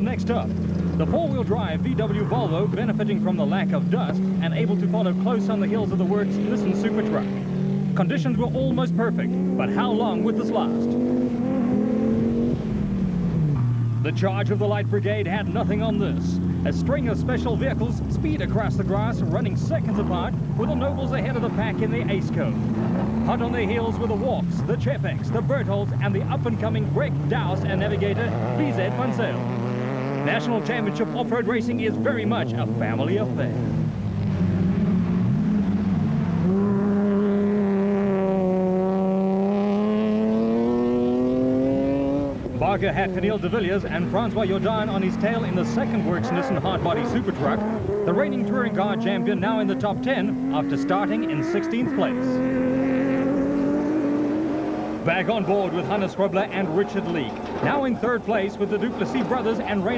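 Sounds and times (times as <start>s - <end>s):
racing car engine running hard: 0.0s - 59.9s.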